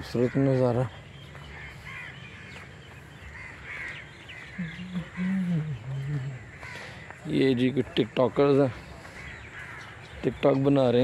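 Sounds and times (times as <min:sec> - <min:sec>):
birds calling faintly: 0:00.0 - 0:11.0.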